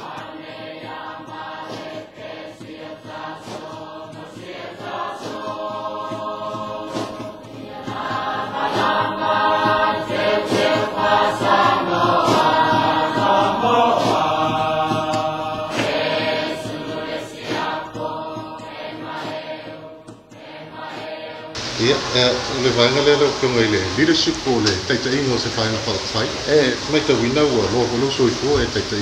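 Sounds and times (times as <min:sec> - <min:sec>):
choir singing in harmony: 0:00.0 - 0:24.3.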